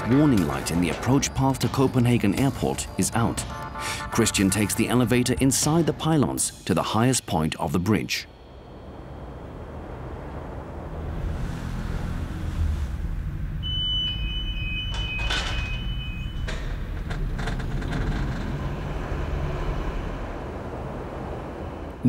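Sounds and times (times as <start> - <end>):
elevator low rumble: 0.0 - 22.0
sharp clanks: 14.1 - 19.0.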